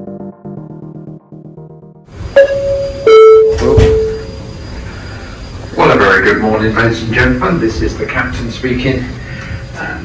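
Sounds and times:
two-tone chime: 0:02.4 - 0:04.3.

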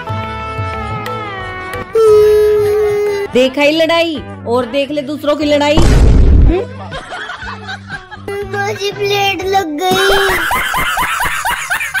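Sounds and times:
high-pitched laughter: 0:09.9 - 0:12.0.

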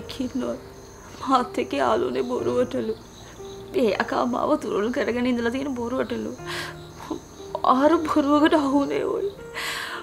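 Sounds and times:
woman speaking: 0:00.0 - 0:03.0, 0:03.7 - 0:06.4, 0:07.1 - 0:09.4.

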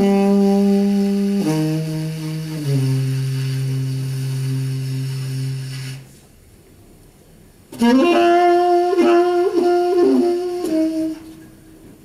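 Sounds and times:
tenor saxophone low notes: 0:00.0 - 0:06.1, 0:07.7 - 0:12.0.

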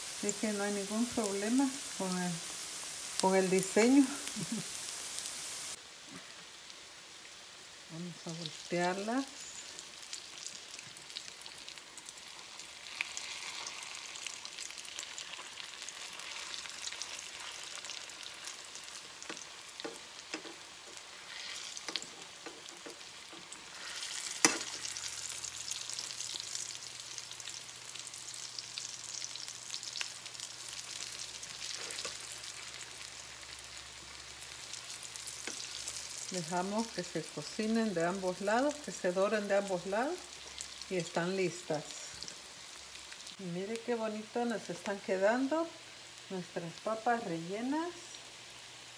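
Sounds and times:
food sizzling in oil: 0:00.0 - 0:48.9.

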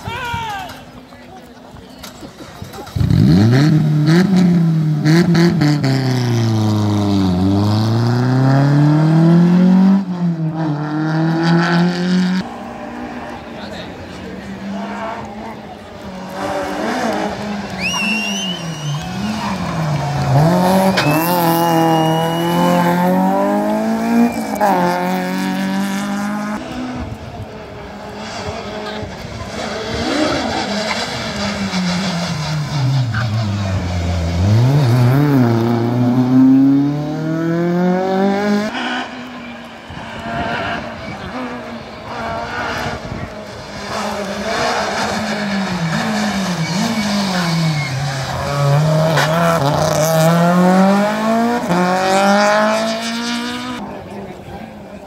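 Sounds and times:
rally car engines revving: 0:00.8 - 0:55.0.

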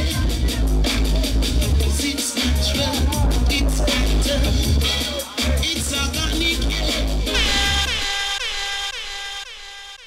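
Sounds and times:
echoing dub tone: 0:07.3 - 0:09.4.

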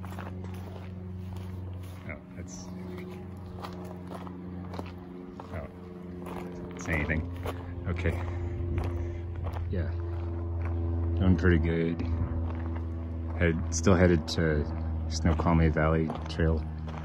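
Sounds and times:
steady low hum: 0:00.0 - 0:17.0
bicycle tyres rolling on gravel: 0:03.0 - 0:08.2.

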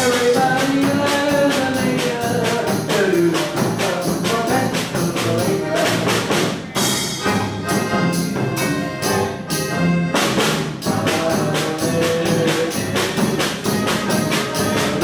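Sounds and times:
accordion: 0:00.0 - 0:15.0
bass drum beating: 0:00.0 - 0:15.0
snare drum: 0:00.0 - 0:15.0.

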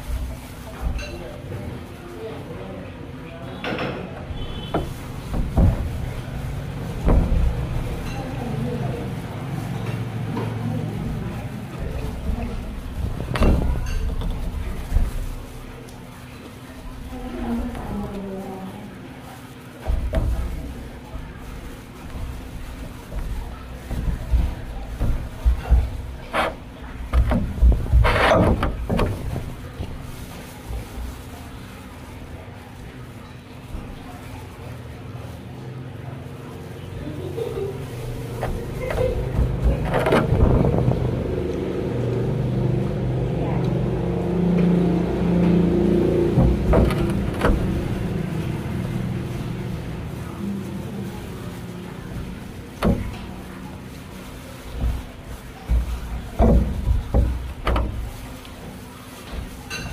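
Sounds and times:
low motor hum: 0:37.3 - 0:59.5
clicks and knocks: 0:45.4 - 0:48.8.

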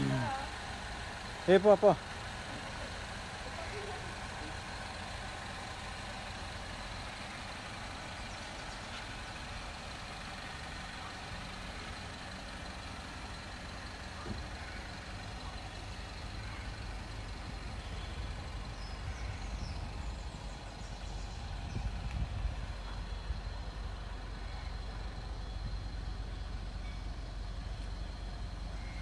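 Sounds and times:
background rumble and hiss: 0:00.0 - 0:29.0.

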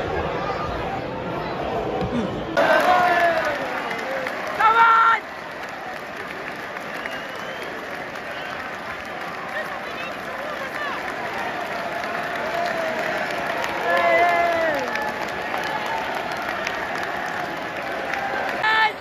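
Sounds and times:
crowd hubbub: 0:00.0 - 0:19.0
crowd shouting: 0:00.0 - 0:19.0
crowd clapping: 0:02.6 - 0:19.0.

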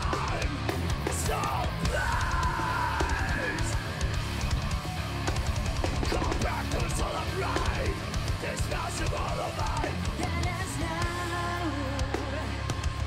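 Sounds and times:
metal band playing live: 0:00.0 - 0:13.0
female singer's vocals: 0:09.0 - 0:13.0.

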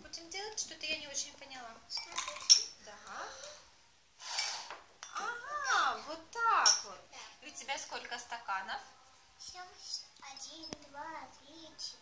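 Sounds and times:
breath blown into a glass: 0:04.2 - 0:04.8.

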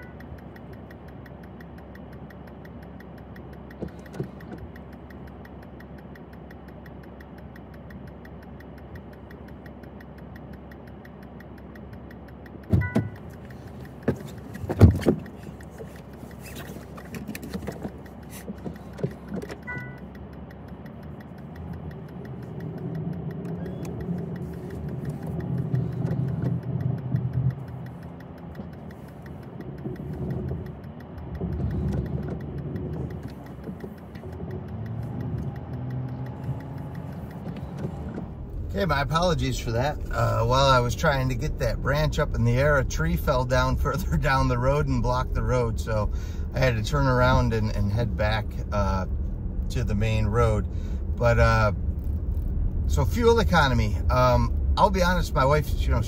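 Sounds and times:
car chime: 0:00.0 - 0:00.6, 0:12.6 - 0:16.3, 0:17.7 - 0:22.6
car engine idling: 0:00.0 - 0:56.0
car rumbling through snow: 0:00.0 - 0:56.0
car door thumping shut: 0:12.7 - 0:13.2.

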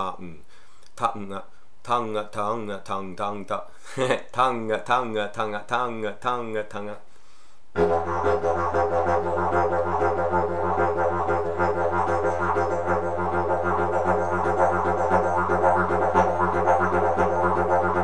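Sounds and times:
didgeridoo drone with rolling rhythm: 0:07.8 - 0:18.0.

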